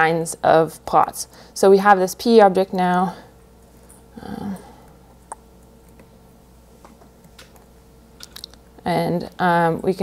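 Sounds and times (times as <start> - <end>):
woman speaking: 0.0 - 3.3, 4.2 - 4.8, 8.8 - 10.0.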